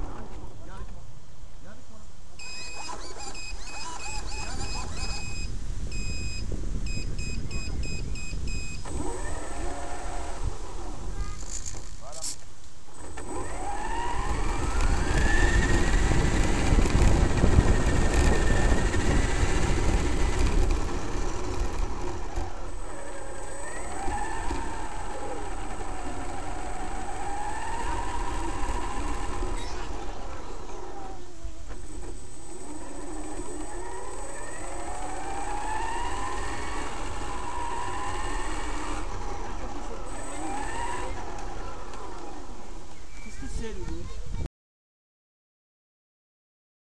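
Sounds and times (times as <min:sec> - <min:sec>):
electric motor whine: 0:02.5 - 0:11.9, 0:12.9 - 0:43.1
tyres rumbling on gravel: 0:13.2 - 0:42.9.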